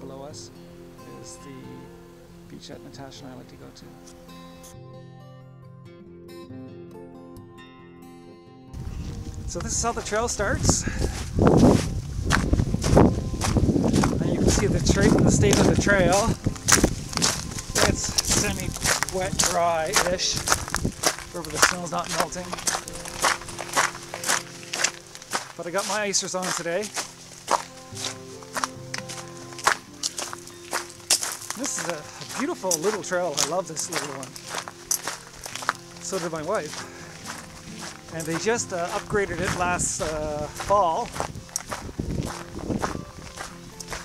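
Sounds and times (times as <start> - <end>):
boot footsteps on wet gravel: 8.8 - 44.0.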